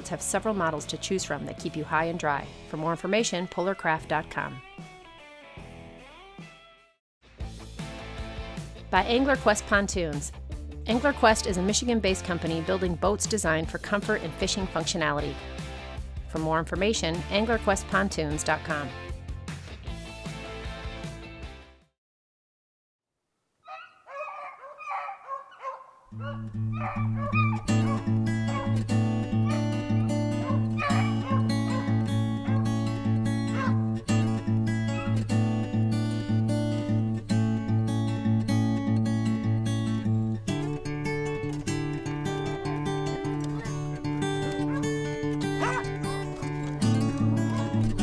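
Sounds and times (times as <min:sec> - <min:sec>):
acoustic guitar music: 0:00.0 - 0:04.6, 0:08.3 - 0:19.1, 0:26.1 - 0:48.0
dogs yelping and whining: 0:23.7 - 0:35.3, 0:43.4 - 0:48.0.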